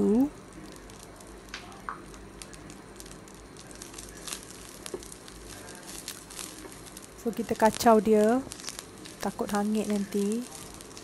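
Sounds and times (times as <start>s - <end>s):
seeds and leaves sizzling in oil: 0.0s - 11.0s.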